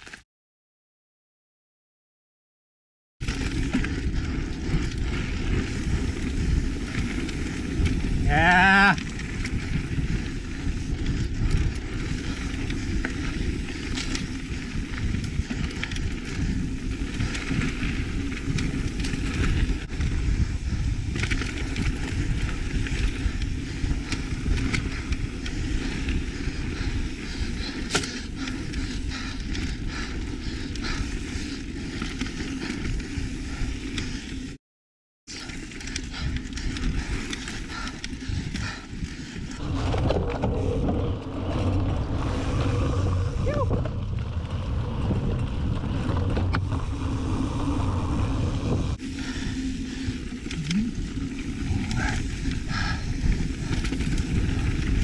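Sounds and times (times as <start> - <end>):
wind noise: 3.2 - 34.5, 35.3 - 55.0
bike tyres rumbling on dirt trail: 3.2 - 34.6, 35.3 - 55.0.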